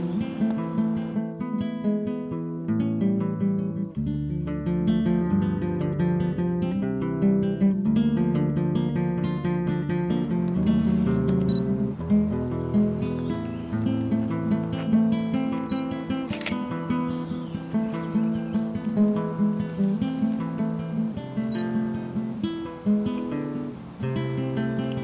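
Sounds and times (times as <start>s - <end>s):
high-pitched insect chorus: 0.0s - 1.2s, 8.8s - 25.0s
acoustic guitar music: 0.0s - 25.0s.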